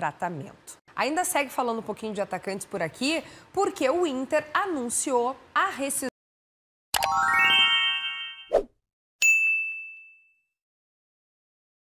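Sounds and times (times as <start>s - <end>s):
bell ding: 9.2s - 10.6s.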